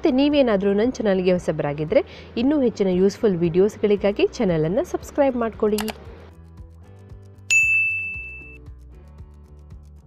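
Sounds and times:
faint background music: 0.0 - 10.0
notification bell ding: 7.5 - 8.6.

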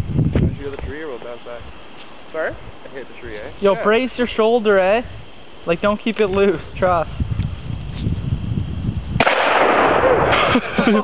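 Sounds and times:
shotgun blast: 9.2 - 10.6.

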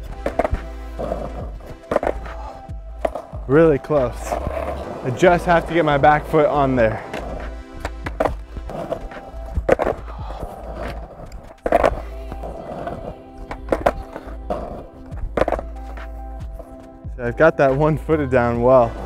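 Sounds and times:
skateboard clacking on asphalt: 0.0 - 17.0
background music: 0.0 - 19.0.

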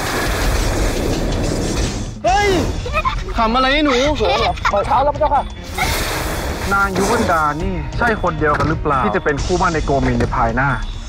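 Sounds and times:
magic energy beam rushing: 5.7 - 7.5.

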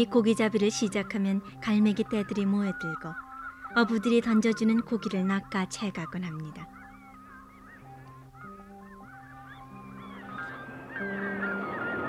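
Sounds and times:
background music of held notes: 0.0 - 12.0
gulls calling: 0.0 - 12.0.

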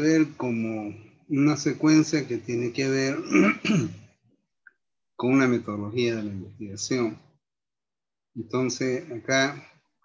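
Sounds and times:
man speaking: 0.0 - 4.0, 5.2 - 7.3, 8.4 - 9.8
throat clearing: 3.2 - 4.1.

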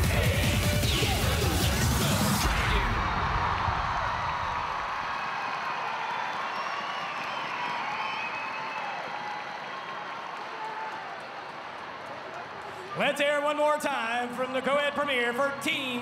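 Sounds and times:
crowd applauding and cheering: 0.0 - 16.0
high whoops: 3.2 - 11.2.

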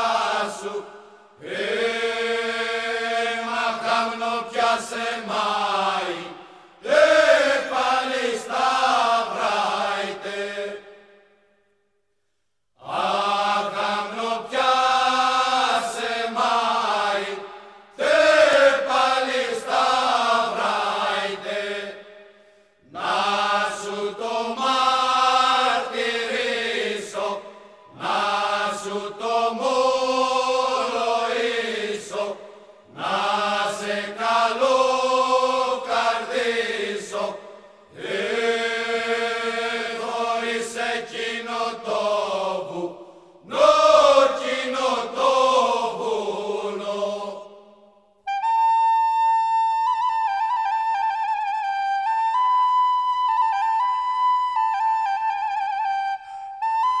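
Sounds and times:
unaccompanied choir singing: 0.0 - 11.1, 12.8 - 22.3, 22.9 - 47.9.

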